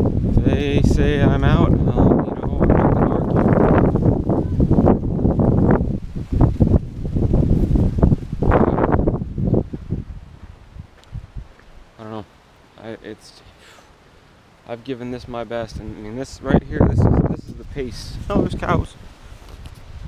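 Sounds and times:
wind buffeting microphone: 0.0s - 11.9s, 15.6s - 20.0s.

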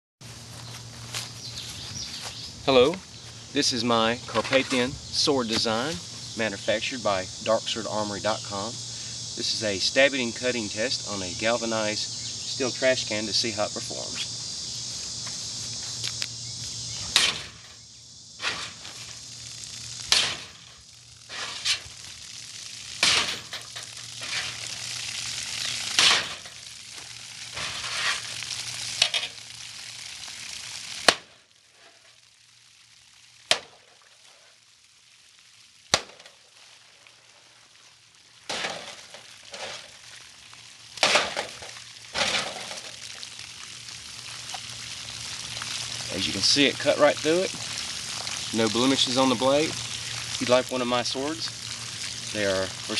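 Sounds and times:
water hissing and splashing: 0.3s - 52.9s
sword hitting metal can: 17.2s - 17.6s, 20.1s - 20.6s, 23.0s - 23.6s, 26.0s - 26.5s.

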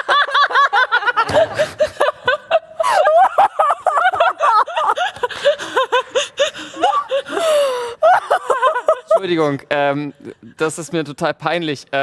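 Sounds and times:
high-pitched laugh: 0.0s - 9.4s
people laughing: 0.0s - 10.6s.

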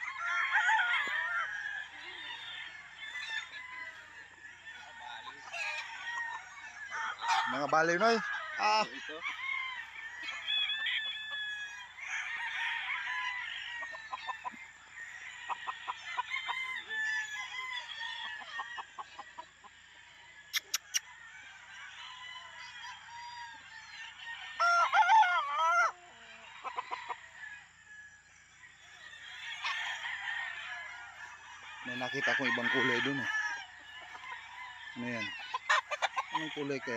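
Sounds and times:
roosters crowing: 0.0s - 36.9s.

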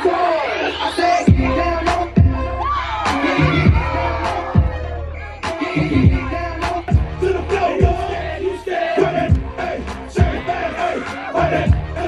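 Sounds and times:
crowd shouting and singing: 0.0s - 12.0s
dance music with kick drum: 1.3s - 8.2s, 9.0s - 12.0s.

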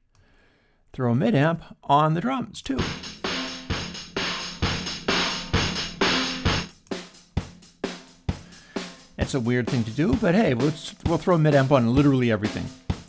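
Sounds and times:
drum kit groove: 2.8s - 13.0s.

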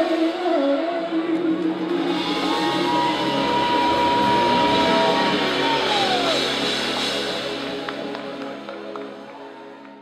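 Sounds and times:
live band playing: 0.0s - 9.9s.

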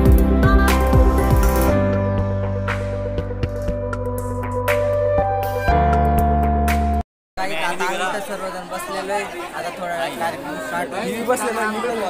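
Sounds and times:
crowd chatter: 7.4s - 12.0s
young man talking: 7.4s - 12.0s.

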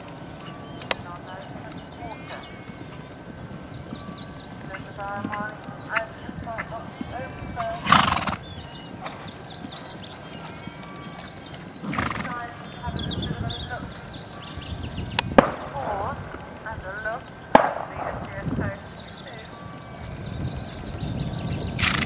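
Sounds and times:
birds chirping: 0.0s - 22.0s
horse breathy rushes: 2.4s - 12.6s, 20.6s - 22.0s.

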